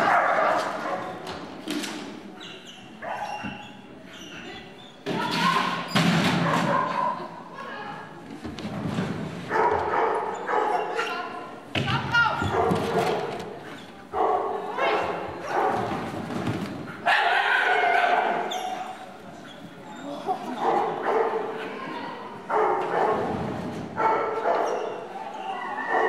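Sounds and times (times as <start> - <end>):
dog barking: 0.0 - 1.1, 9.5 - 11.2, 14.2 - 15.9, 17.1 - 18.5, 20.5 - 21.6, 22.5 - 23.3, 24.0 - 25.0.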